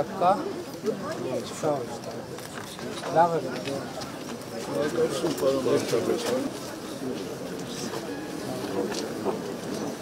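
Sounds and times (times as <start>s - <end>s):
crowd of people talking: 0.0s - 10.0s.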